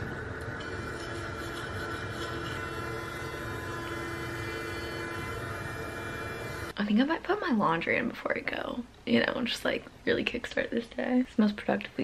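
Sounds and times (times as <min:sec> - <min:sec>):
electric toothbrush buzzing: 0:00.0 - 0:06.8.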